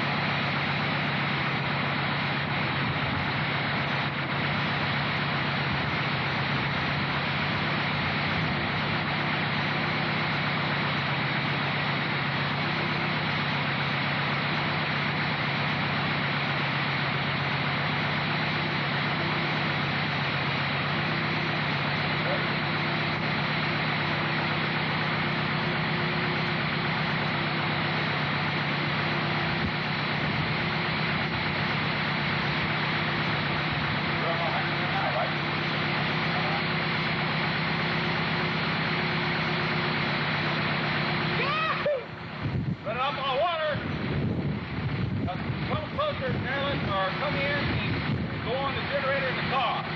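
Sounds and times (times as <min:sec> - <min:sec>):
engine idling: 0:00.0 - 0:49.9.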